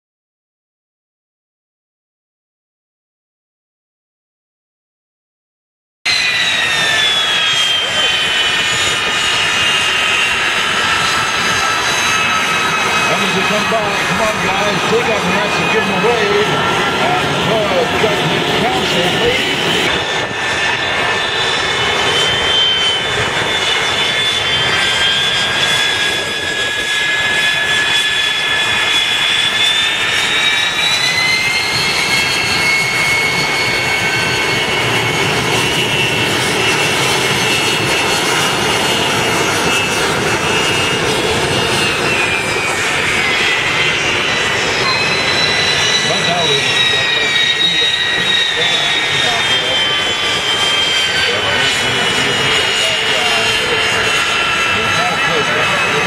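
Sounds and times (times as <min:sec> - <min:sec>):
jet engines whining while taxiing: 0:06.1 - 0:56.0.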